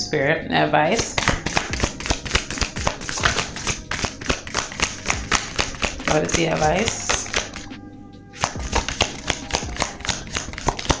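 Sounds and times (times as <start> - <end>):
background music: 0.0 - 11.0
cards being shuffled: 1.0 - 7.8, 8.4 - 11.0.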